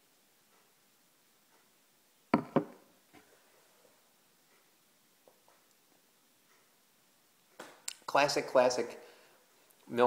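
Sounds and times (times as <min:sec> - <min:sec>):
glass knocking on hard surface: 0:02.4 - 0:02.8.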